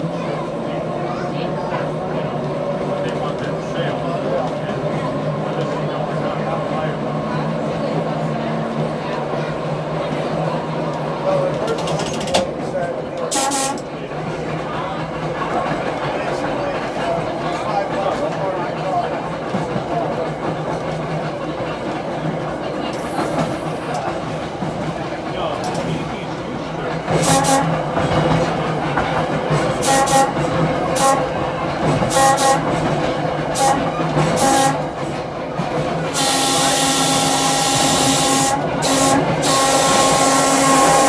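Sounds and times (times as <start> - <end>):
trolley car humming on rails: 0.0 - 41.0.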